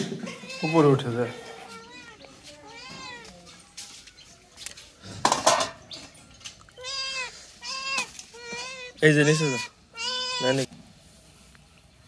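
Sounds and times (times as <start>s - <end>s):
cat meowing: 0.3s - 1.0s, 1.6s - 3.4s, 6.8s - 10.7s.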